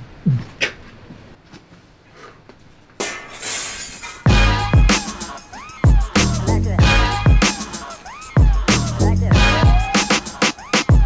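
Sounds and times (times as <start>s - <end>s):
glass shattering: 3.0s - 4.3s.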